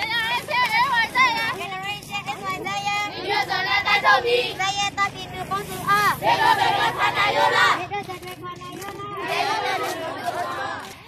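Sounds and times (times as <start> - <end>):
women and children chanting slogans: 0.0 - 11.0.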